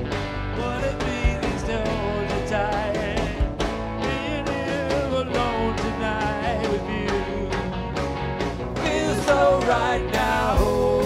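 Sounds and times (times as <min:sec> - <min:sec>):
blues-rock band playing: 0:00.0 - 0:11.0.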